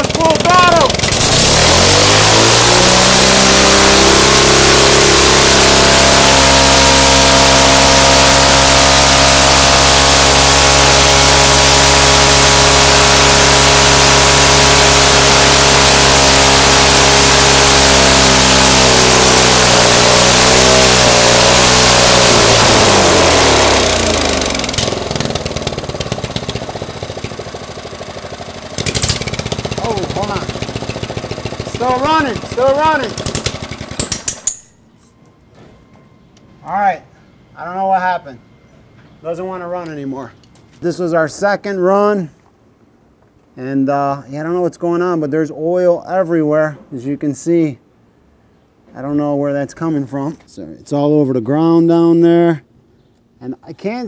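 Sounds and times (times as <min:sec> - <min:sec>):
single-cylinder engine running: 0:00.0 - 0:34.5.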